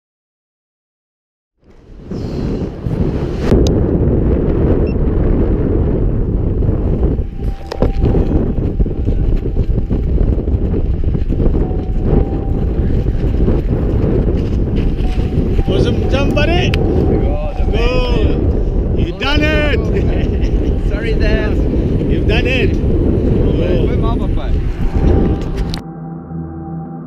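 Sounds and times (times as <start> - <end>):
wind buffeting microphone: 1.6 - 25.8.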